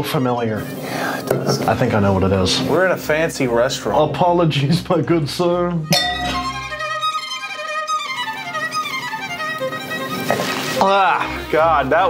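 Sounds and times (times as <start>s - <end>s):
violin music: 0.0s - 12.0s.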